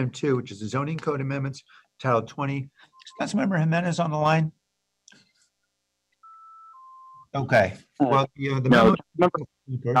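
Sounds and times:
two-tone electronic beep: 6.2 - 7.3.

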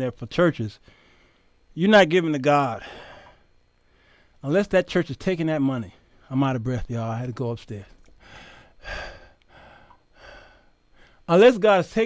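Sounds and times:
man breathing hard: 0.8 - 1.6, 2.8 - 4.4, 8.2 - 11.3.

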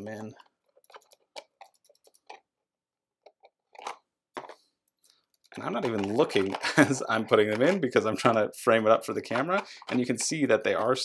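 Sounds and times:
plastic miniatures clicking and rattling: 0.0 - 2.5, 3.2 - 11.0.

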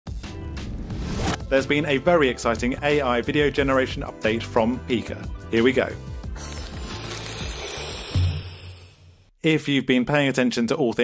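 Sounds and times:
low background music: 0.1 - 7.4
air hissing: 6.4 - 9.2.

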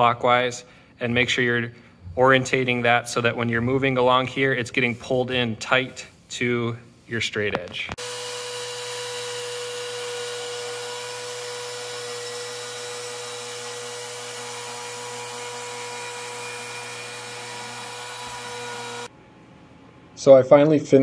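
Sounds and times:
router whining while cutting: 8.0 - 19.1.

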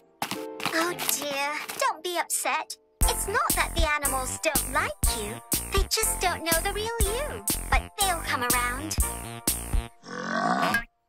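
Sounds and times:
light cartoon music: 0.0 - 11.0.

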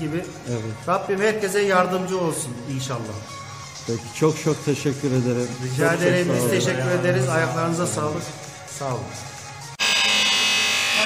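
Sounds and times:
man speaking: 3.9 - 9.2
loud high-pitched buzz: 9.8 - 11.0.

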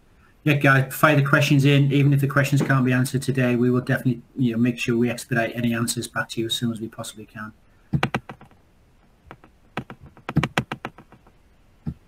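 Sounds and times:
keyboard keys clicking: 8.0 - 8.5, 9.3 - 11.3.

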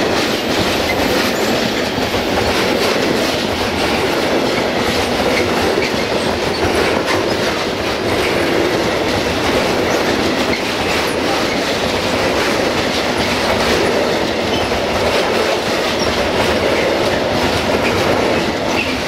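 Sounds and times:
freight train wheels rolling: 0.0 - 19.0
wheels clattering over rail joints: 0.0 - 19.0.

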